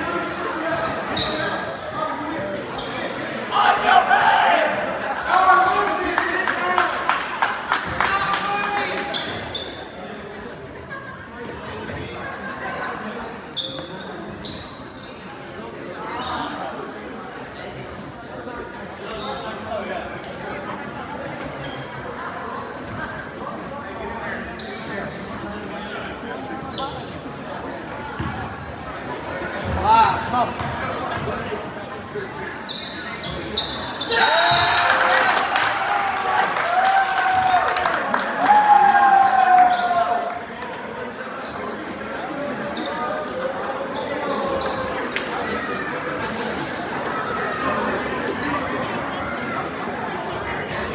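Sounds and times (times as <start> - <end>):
crowd chatter: 0.0 - 50.9
sneakers squeaking on hardwood: 32.7 - 34.6.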